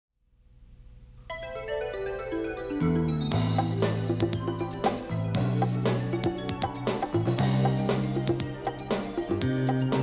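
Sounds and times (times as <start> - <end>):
bright ringing pitched notes: 1.3 - 8.9.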